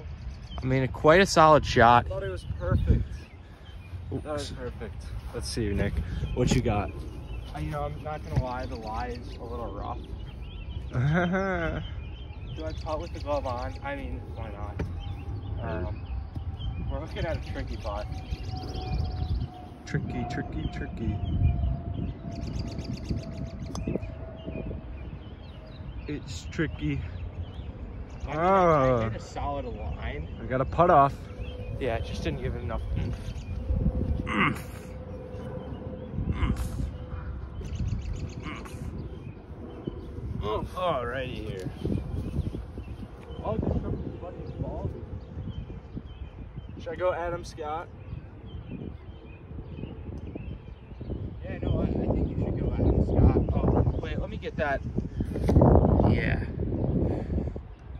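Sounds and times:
birds chirping: 0.0s - 57.9s
wind on microphone: 0.0s - 57.9s.

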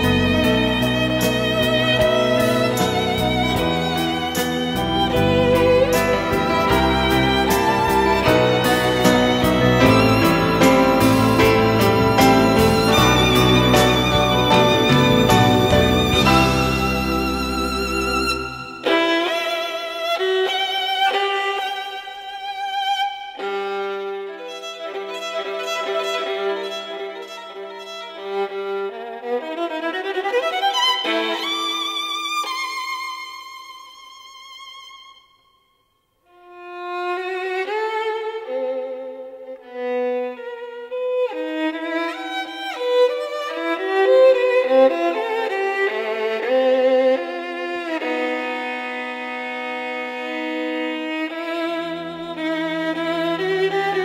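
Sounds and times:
violin playing slow melody: 0.0s - 35.7s, 36.3s - 54.0s.

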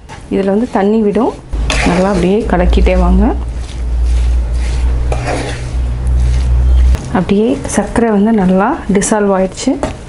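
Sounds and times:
spatula scraping a pan: 0.0s - 8.7s
steady low hum: 0.5s - 8.9s.

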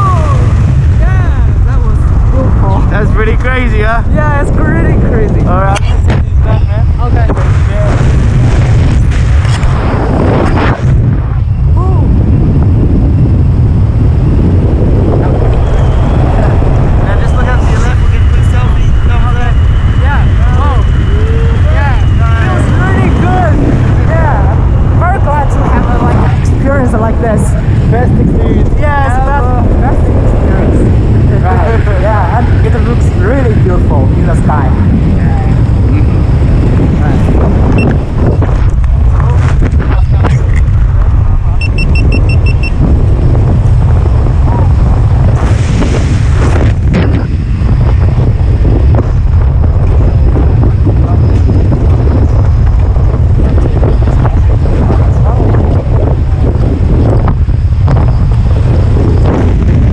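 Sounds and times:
heavy buffeting rumble: 0.0s - 59.9s
wind blasting across microphone: 0.0s - 59.9s.

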